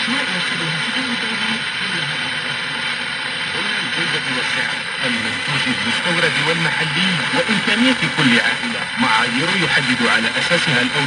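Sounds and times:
faint radio news voice: 0:00.0 - 0:11.0
radio static hiss: 0:00.0 - 0:11.0.

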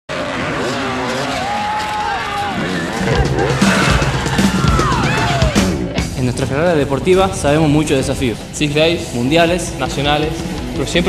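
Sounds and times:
motorcycle engine revving: 0:00.1 - 0:11.0.

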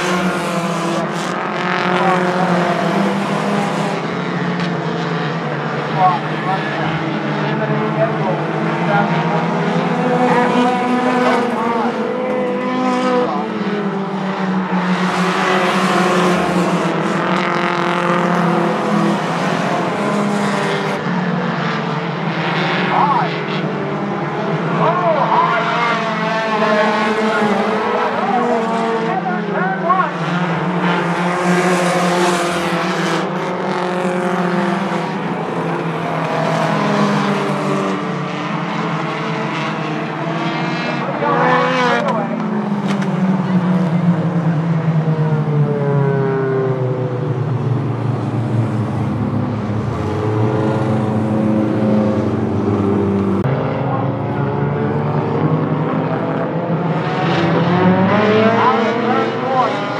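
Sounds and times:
racing car engines: 0:00.0 - 0:59.9.

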